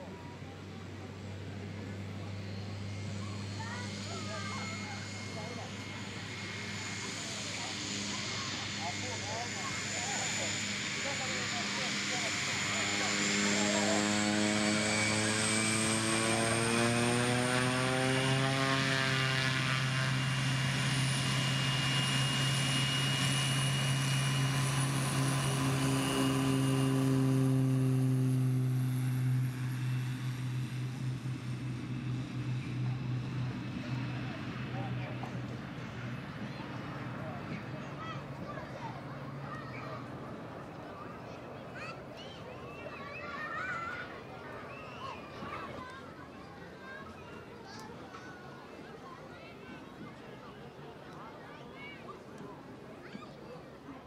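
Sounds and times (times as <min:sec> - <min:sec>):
propeller plane engine droning: 0:00.0 - 0:54.0.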